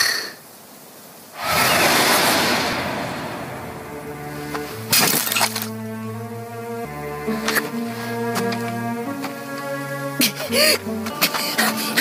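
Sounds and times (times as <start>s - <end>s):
loud crash-like burst: 1.4s - 5.7s
sharp hit: 1.4s - 5.8s
tense music with low notes: 1.4s - 12.0s.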